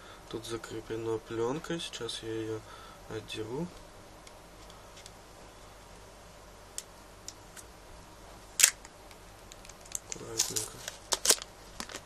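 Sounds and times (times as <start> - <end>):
plastic film crackling: 9.5 - 12.0.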